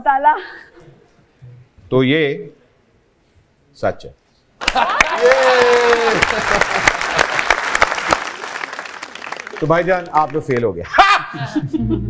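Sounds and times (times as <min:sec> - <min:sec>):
audience applauding: 0:04.6 - 0:10.8.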